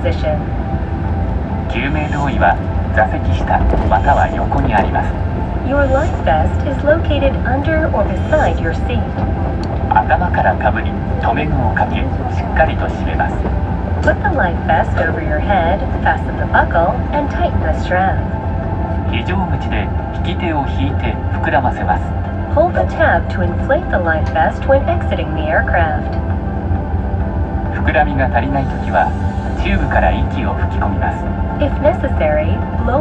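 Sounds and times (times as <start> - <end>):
safety announcement over speakers: 0.0 - 0.5, 1.7 - 18.4, 19.0 - 26.2, 27.7 - 33.0
airliner cabin rumble: 0.0 - 33.0.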